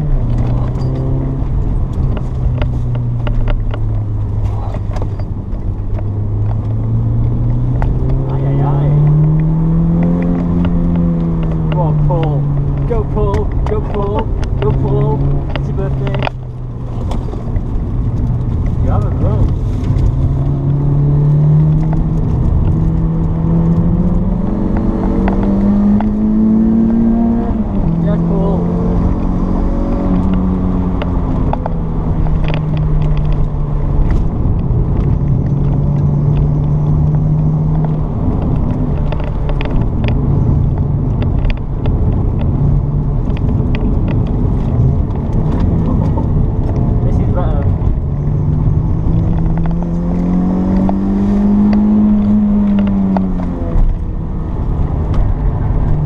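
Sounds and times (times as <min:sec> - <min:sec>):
car engine revving in cabin: 0:00.0 - 0:56.0.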